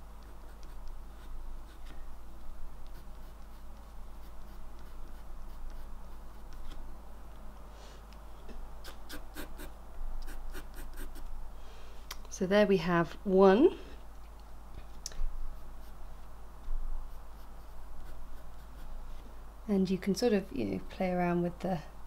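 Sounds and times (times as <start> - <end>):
pencil scratching on paper: 0.2 - 1.9, 2.8 - 6.7, 8.9 - 11.3, 15.5 - 16.0, 17.0 - 19.0.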